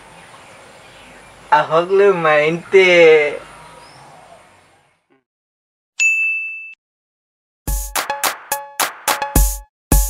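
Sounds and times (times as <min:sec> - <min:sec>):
bright chime ding: 0:06.0 - 0:06.8
music with heavy beat: 0:07.7 - 0:10.0.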